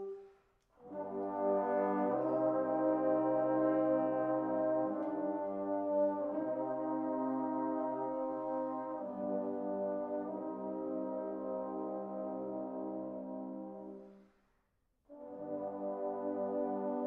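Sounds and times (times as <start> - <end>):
trombone choir playing chords: 0.8 - 14.0, 15.1 - 17.0.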